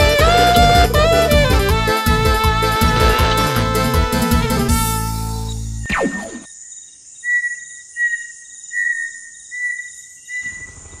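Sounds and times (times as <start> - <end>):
insect chirping: 5.4 - 11.0.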